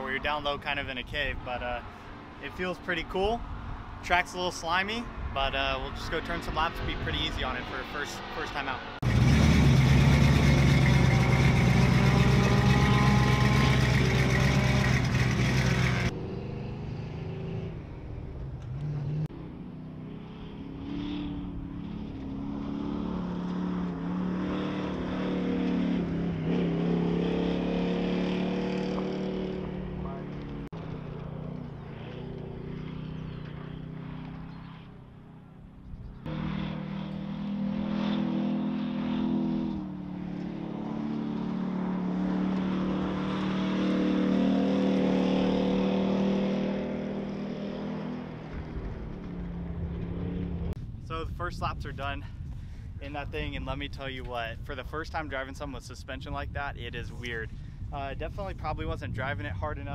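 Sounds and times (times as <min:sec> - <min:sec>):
race car engine accelerating: 0:06.5 - 0:17.9, 0:36.2 - 0:50.8.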